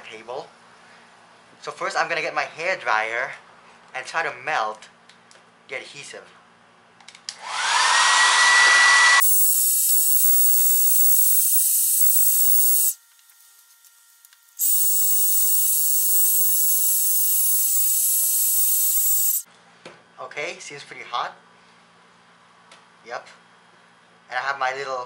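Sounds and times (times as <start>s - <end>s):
hair dryer blowing: 7.4s - 13.0s.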